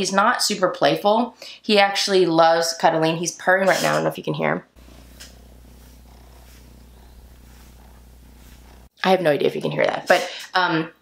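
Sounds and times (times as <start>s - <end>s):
kitten purring: 4.8s - 8.9s.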